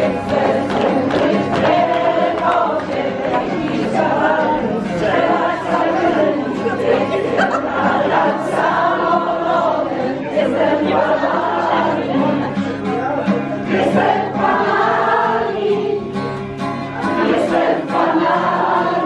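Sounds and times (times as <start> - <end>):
group of people singing: 0.0 - 19.0.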